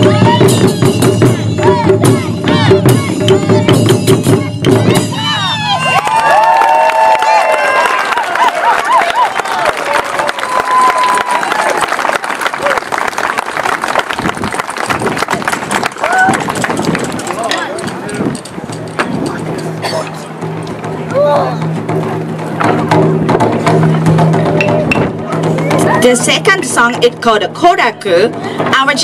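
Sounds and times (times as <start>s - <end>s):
taiko drums: 0.0s - 5.4s, 14.8s - 27.3s
audience applauding and cheering: 5.7s - 17.4s.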